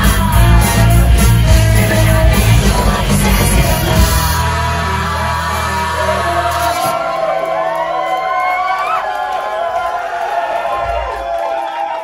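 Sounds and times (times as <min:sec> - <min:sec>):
audience cheering and whooping: 0:06.4 - 0:12.0
long rising whoop: 0:06.9 - 0:12.0.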